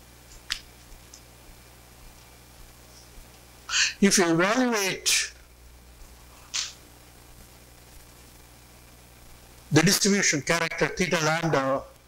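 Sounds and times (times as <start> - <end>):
low electrical hum: 0.0 - 12.0
breathy hiss into microphone: 2.8 - 4.1.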